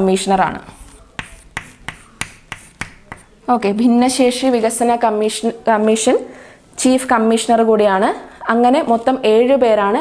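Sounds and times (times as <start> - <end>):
chalk tapping on blackboard: 0.8 - 3.4.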